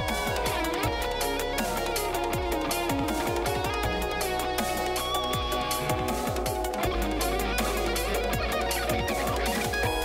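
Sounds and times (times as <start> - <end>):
kick drums falling in pitch: 0.0 - 1.2, 2.3 - 4.2
backing track with bass: 0.0 - 10.0
electric guitar playing notes: 0.0 - 10.0.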